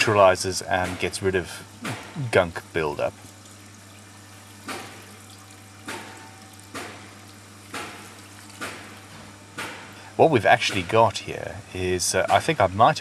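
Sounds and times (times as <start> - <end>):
water pouring into a tray: 3.1 - 9.1.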